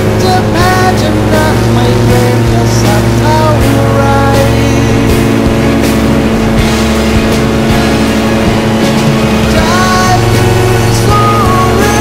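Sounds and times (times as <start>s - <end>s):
propeller aircraft engine drone: 0.0s - 12.0s
rock song: 0.0s - 12.0s.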